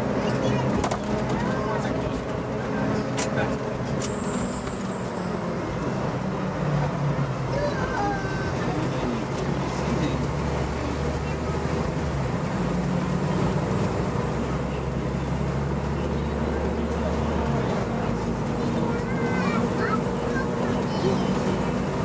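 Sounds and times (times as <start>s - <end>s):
diesel engine running: 0.0s - 22.0s
road and tyre noise: 0.0s - 22.0s.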